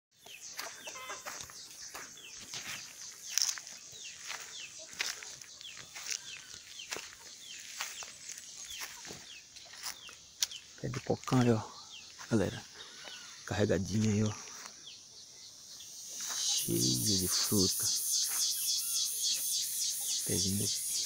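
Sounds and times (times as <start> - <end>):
birds chirping: 0.1 - 21.0.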